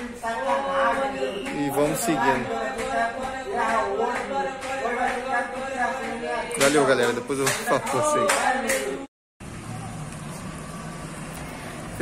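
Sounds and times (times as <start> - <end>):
distant road traffic hum: 9.4 - 12.0.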